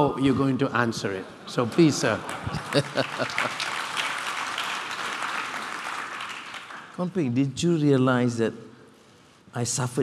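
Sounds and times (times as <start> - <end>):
audience applauding: 2.0 - 7.1.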